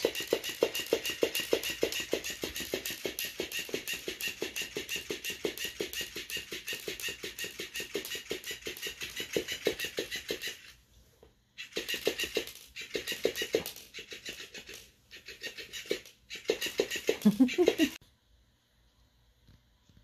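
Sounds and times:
toy tail tapping hard floor: 0.0 - 10.7, 11.7 - 14.8.

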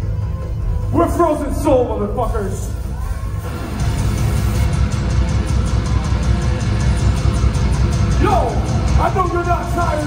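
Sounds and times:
death metal band playing live: 3.6 - 10.0.

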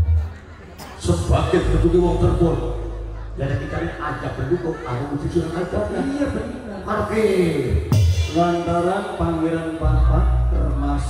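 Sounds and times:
man speaking over amplification: 0.8 - 11.0.

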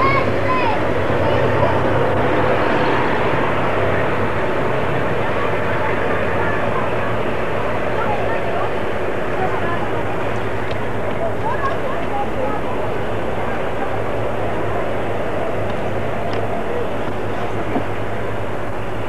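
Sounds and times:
indistinct voices: 0.0 - 18.6
vehicle engine running: 0.0 - 19.0.

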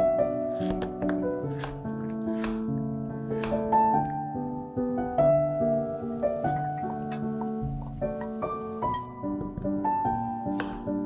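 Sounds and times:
background music with held notes: 0.0 - 11.0
knife slicing carrot on board: 0.5 - 2.7, 3.3 - 4.1, 10.5 - 11.0.

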